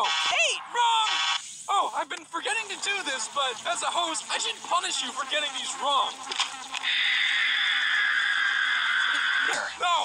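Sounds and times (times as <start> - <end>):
harsh high-pitched screech from speaker: 0.0 - 2.0, 2.7 - 9.8.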